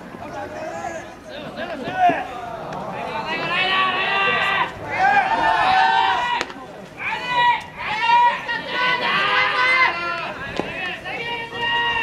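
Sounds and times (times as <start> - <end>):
players shouting: 0.2 - 12.0.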